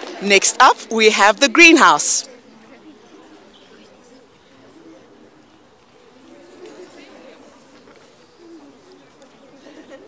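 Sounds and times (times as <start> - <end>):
faint crowd chatter: 0.0 - 10.0
dove cooing: 2.8 - 10.0.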